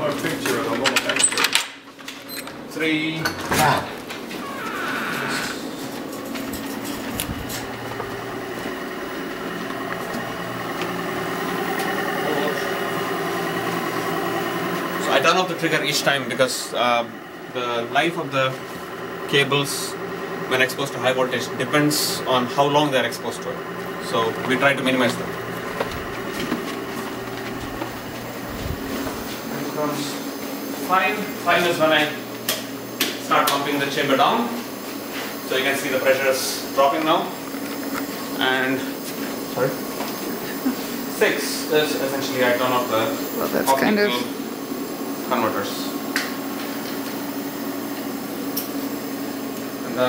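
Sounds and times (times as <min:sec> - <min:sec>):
laboratory equipment humming: 0:00.0 - 0:50.0.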